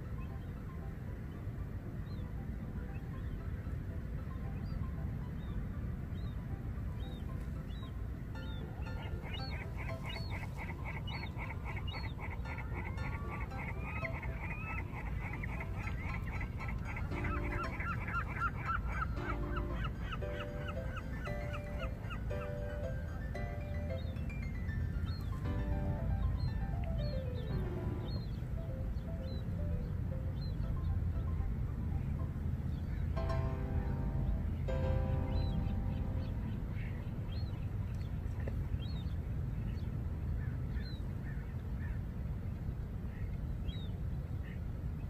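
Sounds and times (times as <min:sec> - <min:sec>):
waterbirds calling: 0:00.0 - 0:45.0
steady low rumble: 0:14.2 - 0:43.6.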